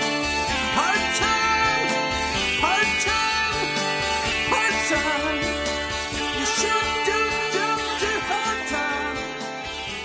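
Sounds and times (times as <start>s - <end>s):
country guitar music: 0.0s - 10.0s.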